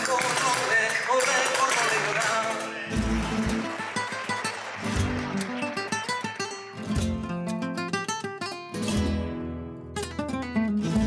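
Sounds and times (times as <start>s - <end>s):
flamenco acoustic guitar: 0.0s - 11.0s.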